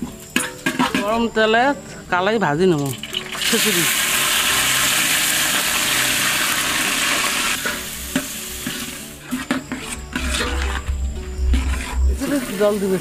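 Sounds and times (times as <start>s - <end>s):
lentils sizzling in hot oil: 2.7s - 13.0s.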